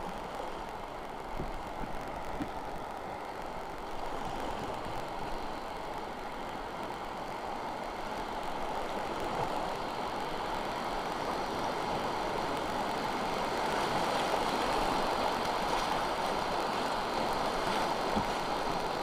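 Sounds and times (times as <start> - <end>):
river rapid rushing water: 0.0 - 19.0.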